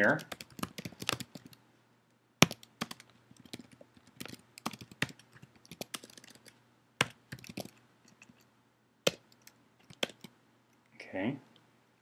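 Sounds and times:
typing on computer keyboard: 0.1 - 1.6, 2.4 - 8.5, 9.1 - 10.3.

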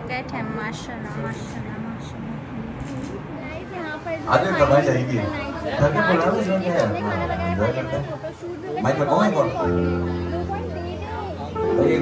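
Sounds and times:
people talking over one another: 3.3 - 12.0.

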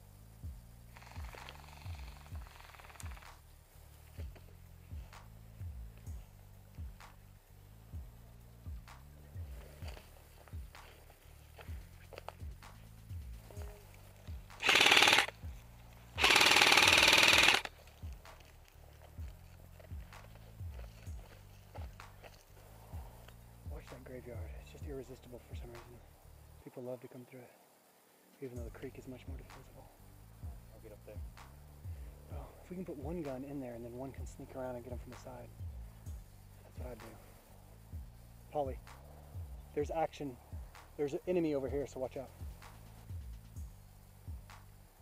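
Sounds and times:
music with bass beat: 0.0 - 26.6, 28.6 - 45.0
rifle full-auto fire bursts: 14.5 - 15.4, 16.2 - 17.7.

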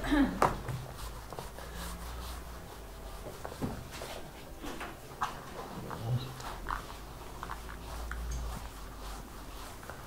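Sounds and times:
eraser wiping whiteboard: 0.6 - 4.5, 5.2 - 10.0.

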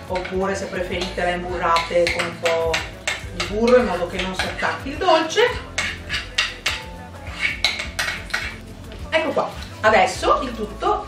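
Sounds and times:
woman speaking: 0.0 - 5.6, 9.0 - 11.0
kitchenware scraping ceramic bowl: 0.0 - 8.7.

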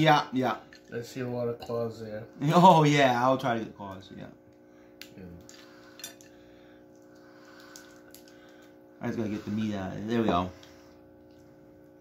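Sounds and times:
shell cracking: 7.0 - 8.8.

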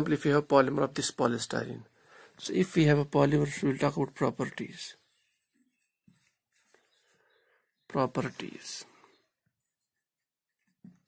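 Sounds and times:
marker strokes on whiteboard: 3.2 - 7.3, 8.0 - 11.0.

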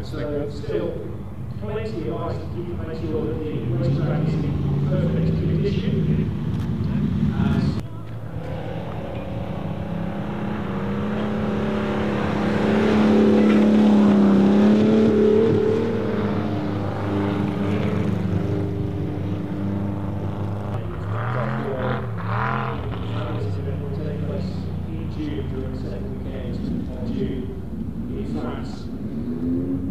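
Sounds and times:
car engine revving: 0.0 - 29.9.

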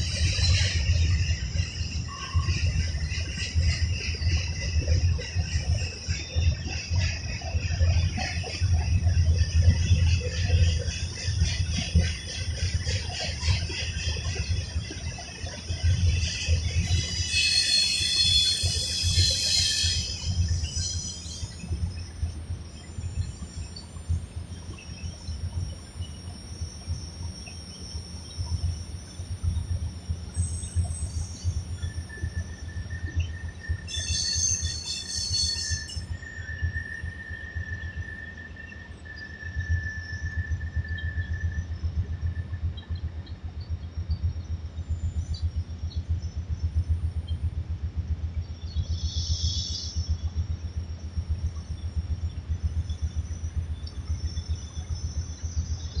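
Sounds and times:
thin high squeal: 16.8 - 21.6, 33.9 - 36.4.

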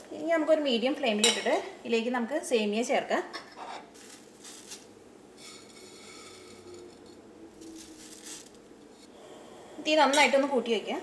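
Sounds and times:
woman speaking: 0.0 - 3.3, 9.8 - 11.0
metal kitchenware clink: 1.2 - 1.6.

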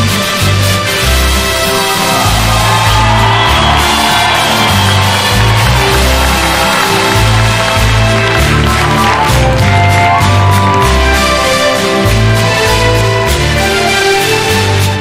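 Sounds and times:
bass line: 0.0 - 15.0.

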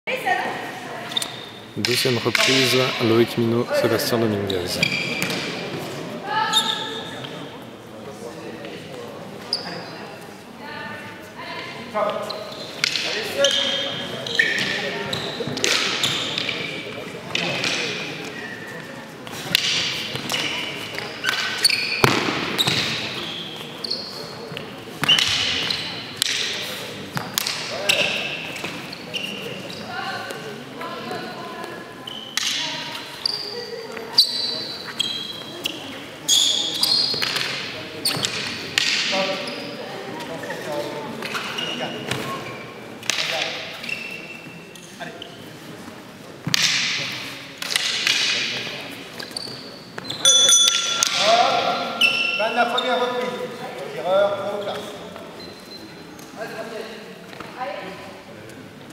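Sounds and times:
shoes squeaking on gym floor: 1.0 - 1.8, 4.3 - 7.5, 9.4 - 10.1, 12.0 - 17.5, 18.2 - 42.8, 43.6 - 45.9, 48.8 - 57.7.

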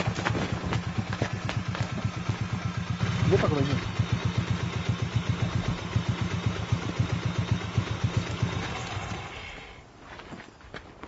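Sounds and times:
motorcycle engine idling: 0.0 - 9.8.

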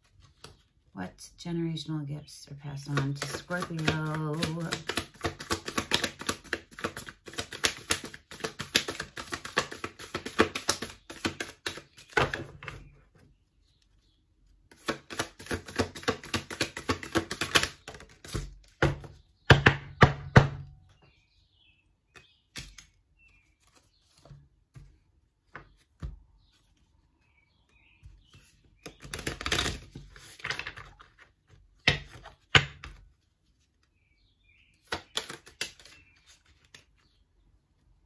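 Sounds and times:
card tapping: 2.9 - 12.4
cards slapping: 2.9 - 12.7, 14.7 - 19.2, 22.1 - 25.0, 28.4 - 33.0, 34.8 - 37.0
cards being shuffled: 2.9 - 12.8, 14.7 - 19.2, 22.1 - 26.9, 28.3 - 33.8, 34.8 - 37.0.

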